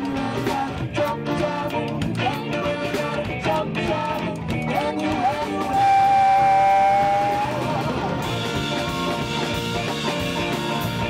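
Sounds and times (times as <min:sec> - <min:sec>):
small jazz band playing: 0:00.0 - 0:11.0.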